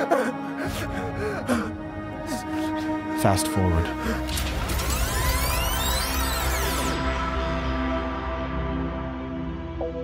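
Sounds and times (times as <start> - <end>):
background music drone: 0.0 - 10.0.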